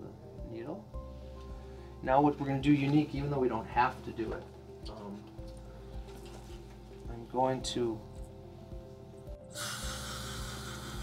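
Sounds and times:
background music with slow beat: 0.0 - 11.0
dental equipment hiss: 9.5 - 11.0.

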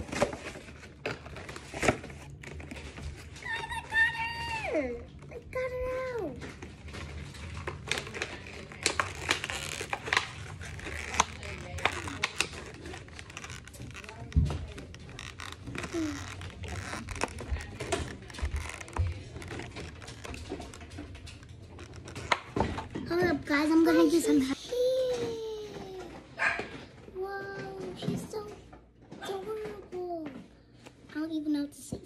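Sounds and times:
plastic packaging crinkling: 0.0 - 24.9.

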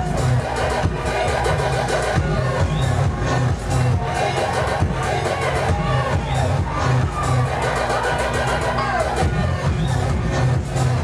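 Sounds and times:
electronic music with heavy bass beat: 0.0 - 11.0.

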